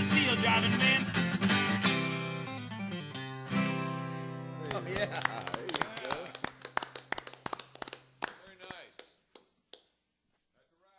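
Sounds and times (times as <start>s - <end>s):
acoustic guitar chord ringing: 0.0s - 4.9s
people clapping: 4.6s - 10.0s.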